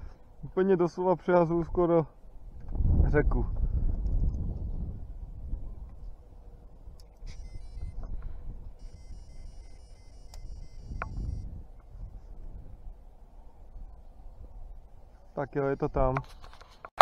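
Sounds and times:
wind on microphone: 2.3s - 15.0s
electronic bite alarm tone: 7.2s - 8.0s, 8.8s - 11.5s.

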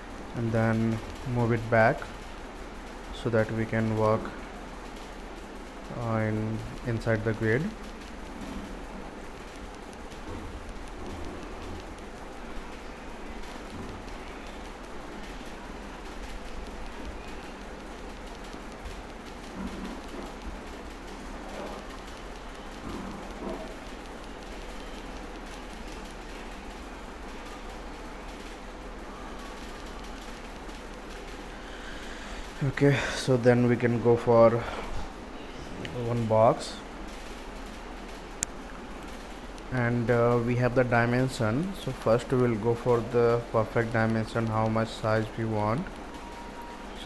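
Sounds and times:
background hiss: 0.0s - 47.0s
low electrical hum: 0.0s - 47.0s.

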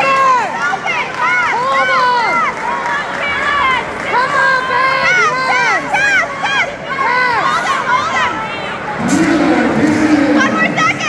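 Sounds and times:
crowd shouting and calling: 0.0s - 11.0s.

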